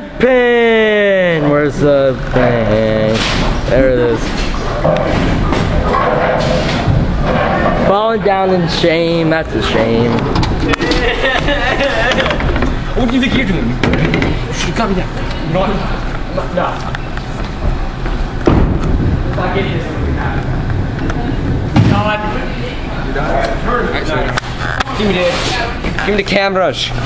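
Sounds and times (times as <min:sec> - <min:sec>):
bowling alley din: 0:02.2 - 0:14.8, 0:17.0 - 0:23.7
heavy thump: 0:18.4 - 0:19.3, 0:21.6 - 0:22.2.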